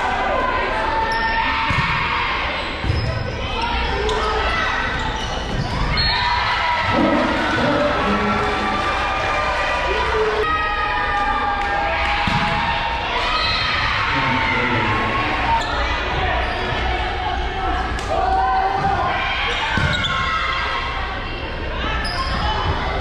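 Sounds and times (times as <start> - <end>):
spectators chattering: 0.0 - 23.0.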